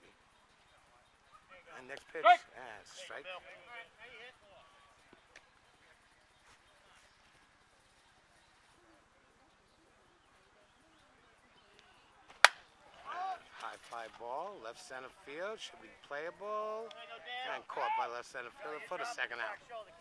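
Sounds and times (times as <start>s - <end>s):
bat cracking ball: 12.3s - 12.7s.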